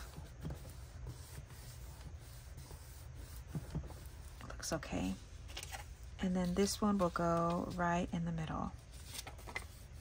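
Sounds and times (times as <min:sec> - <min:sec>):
hands rubbing on paper: 0:00.0 - 0:08.1, 0:08.9 - 0:10.0
low steady hum: 0:00.0 - 0:10.0.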